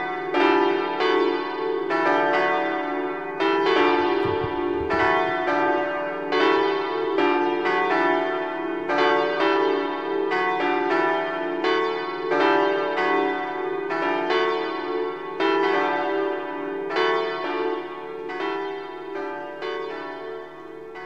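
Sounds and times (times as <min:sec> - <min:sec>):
church bells ringing a peal: 0:00.0 - 0:21.0.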